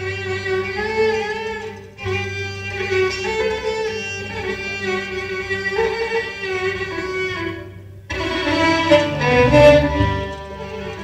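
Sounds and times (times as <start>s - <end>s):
low string backing: 0.0s - 11.0s
violin solo melody: 0.0s - 11.0s.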